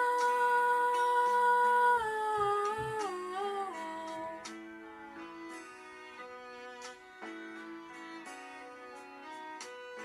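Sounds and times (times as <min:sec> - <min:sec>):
girl singing: 0:00.0 - 0:04.5
soft backing track: 0:00.0 - 0:10.0.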